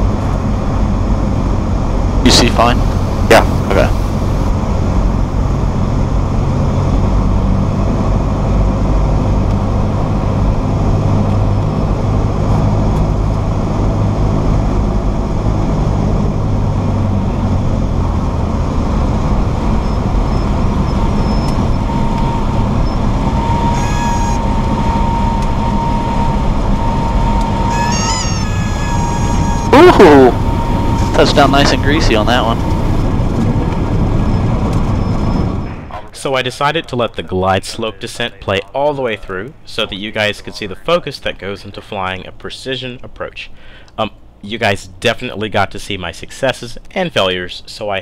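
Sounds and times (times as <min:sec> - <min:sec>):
aircraft engine droning: 0:00.0 - 0:36.2
stall warning horn tone: 0:19.9 - 0:33.0.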